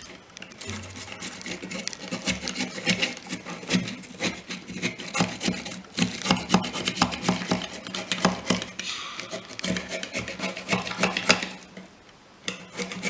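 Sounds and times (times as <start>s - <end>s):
potato grated on metal grater: 0.6s - 11.6s, 12.5s - 13.0s.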